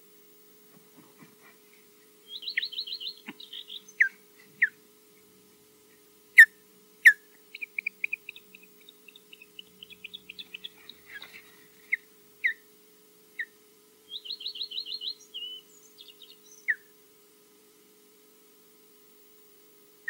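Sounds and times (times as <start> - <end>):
bird chirping: 2.2 - 4.8, 6.4 - 12.6, 13.4 - 16.9
osprey whistling alarm calls: 2.2 - 4.8, 6.4 - 12.7, 13.4 - 16.9
bird trilling: 2.3 - 4.8, 6.4 - 12.6, 13.4 - 16.9.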